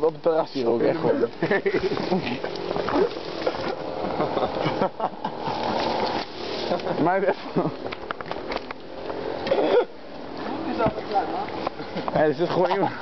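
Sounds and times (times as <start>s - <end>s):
hissy background noise: 0.0s - 13.0s.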